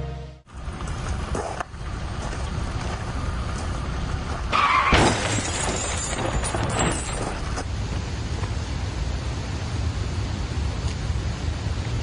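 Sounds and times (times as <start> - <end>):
steady low rumble: 0.0 - 4.5, 6.4 - 12.0
car crash with shattering glass: 4.5 - 7.6.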